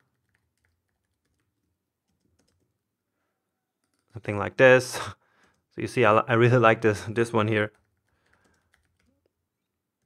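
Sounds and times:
keyboard typing: 0.0s - 2.8s, 3.8s - 4.2s, 7.6s - 10.0s.

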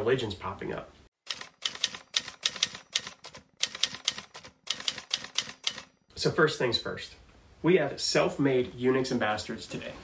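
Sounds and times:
typewriter keys striking: 1.3s - 5.9s.

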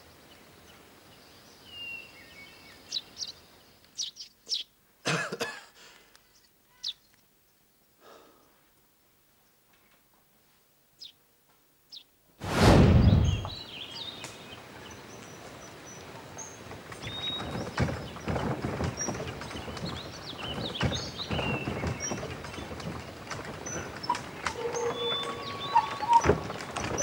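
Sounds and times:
outdoor background noise: 0.0s - 27.0s
loud rushing burst: 12.4s - 13.6s
birds chirping: 12.8s - 27.0s.

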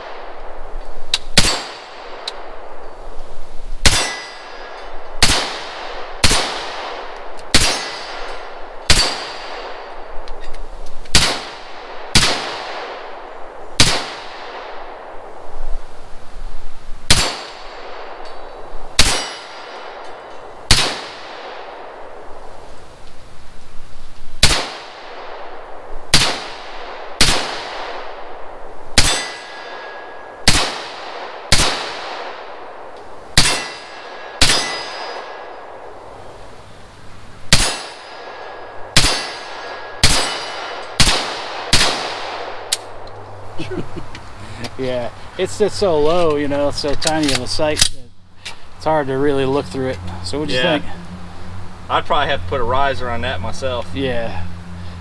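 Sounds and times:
rifle shots: 1.3s - 2.8s, 3.8s - 10.1s, 11.1s - 15.3s, 17.1s - 18.2s, 18.9s - 22.3s, 24.4s - 36.0s, 37.5s - 43.0s
metallic ring of steel target: 3.8s - 5.4s, 7.5s - 9.6s, 17.1s - 20.5s, 29.0s - 30.7s, 33.4s - 35.6s, 37.5s - 41.2s.

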